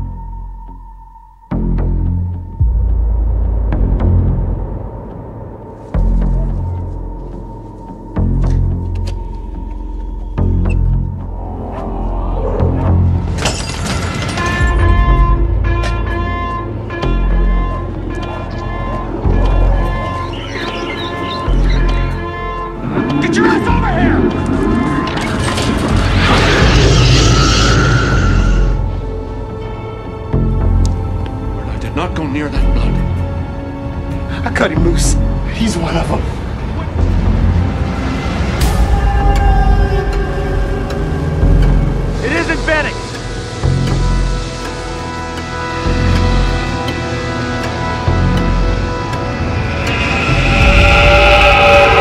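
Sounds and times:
dark film score: 0.0s - 52.0s
deep rumbling bass drone: 1.6s - 9.0s, 10.0s - 13.5s, 43.4s - 52.0s.

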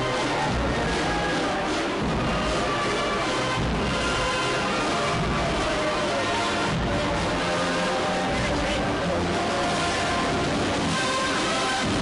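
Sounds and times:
band music playing: 0.0s - 12.0s
crowd talking: 0.0s - 12.0s.

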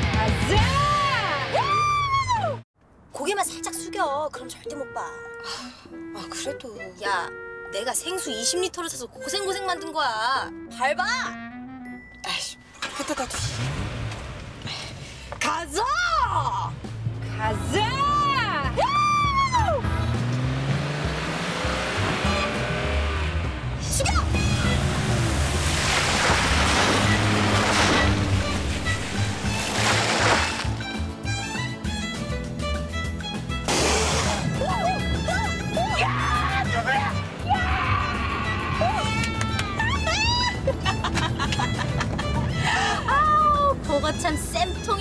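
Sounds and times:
background music: 0.0s - 2.6s, 3.2s - 13.2s, 15.8s - 45.0s
women squealing with glee: 1.6s - 2.6s, 18.8s - 19.8s, 34.6s - 40.7s
car splashing through puddle: 24.2s - 31.0s
person shouting: 34.6s - 39.9s.

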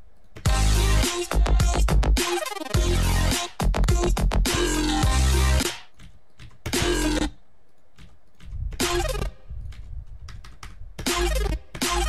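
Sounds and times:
bass-heavy electronic music: 0.4s - 5.9s, 6.7s - 7.3s, 8.8s - 9.4s, 11.0s - 12.0s
computer keyboard taps: 5.9s - 6.8s, 7.7s - 8.8s, 9.6s - 11.2s.

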